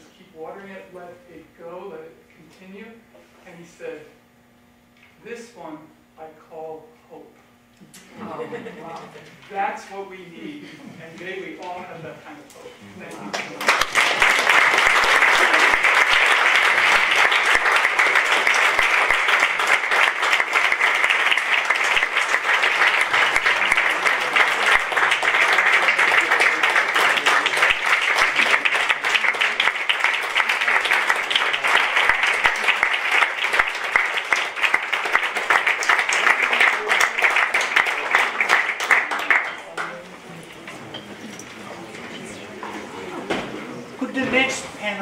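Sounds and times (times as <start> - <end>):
crowd applauding: 13.3 - 40.1.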